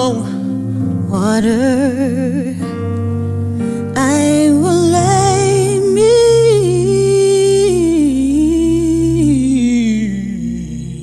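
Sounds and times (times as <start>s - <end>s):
electronic keyboard chords: 0.0s - 11.0s
woman singing with vibrato: 3.9s - 11.0s.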